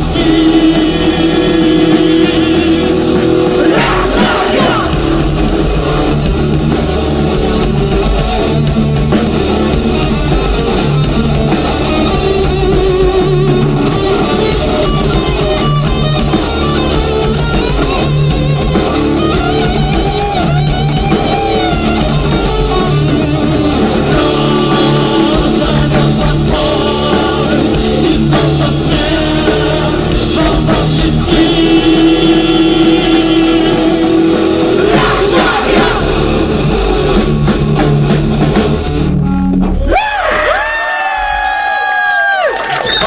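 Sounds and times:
live rock band playing: 0.0s - 40.7s.

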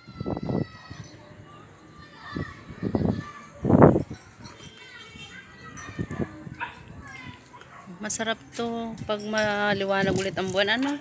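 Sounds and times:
children playing and calling out: 0.0s - 8.0s.

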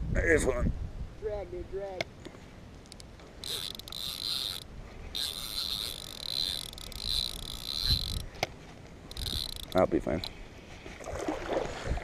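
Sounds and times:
spinning reel whirring: 2.9s - 8.4s, 9.1s - 10.3s.

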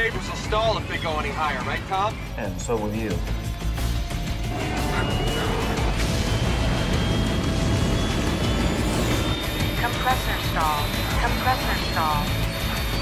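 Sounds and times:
dramatic music: 0.0s - 13.0s
jet engines rumbling: 4.3s - 13.0s.

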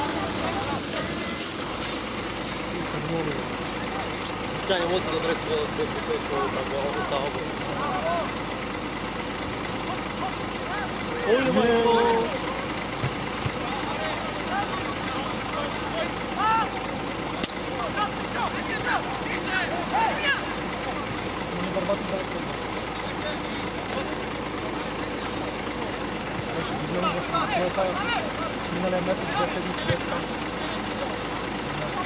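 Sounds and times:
distant players shouting: 2.8s - 32.0s
sharp click: 17.4s - 17.6s.

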